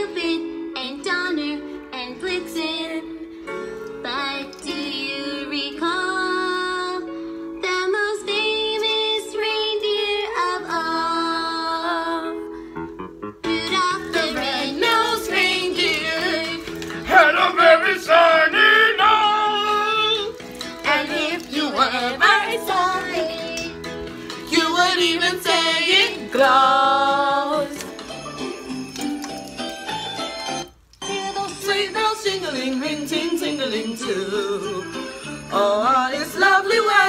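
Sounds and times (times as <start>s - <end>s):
sustained music accompaniment: 0.0s - 37.0s
girls singing into microphone: 13.5s - 17.2s, 35.8s - 37.0s.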